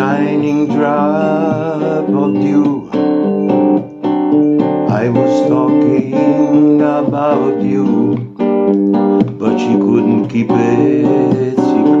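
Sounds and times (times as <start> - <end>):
person singing: 0.0 - 3.4, 4.9 - 12.0
acoustic guitar chords: 0.0 - 12.0.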